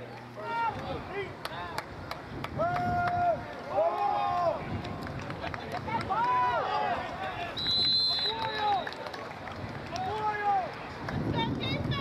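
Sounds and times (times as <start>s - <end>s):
whistle blast: 7.6s - 8.9s.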